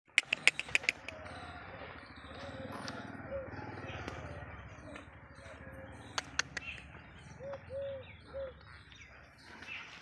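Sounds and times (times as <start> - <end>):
dove cooing: 0.3 - 8.8.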